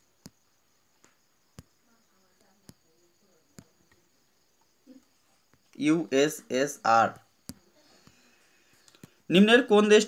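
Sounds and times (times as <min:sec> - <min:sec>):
touchscreen taps: 0:01.0 - 0:01.7, 0:07.1 - 0:08.2.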